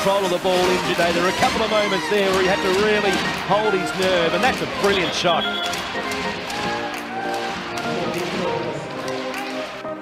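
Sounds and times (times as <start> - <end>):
background music with held notes: 0.0 - 10.0
crowd noise: 0.0 - 10.0.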